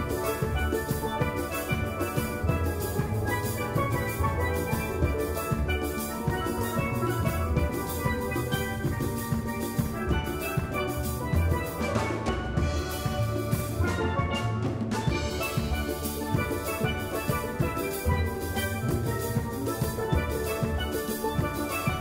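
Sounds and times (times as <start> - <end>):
drum kit steady beat: 0.0 - 22.0
steelpans struck with mallets: 0.0 - 22.0.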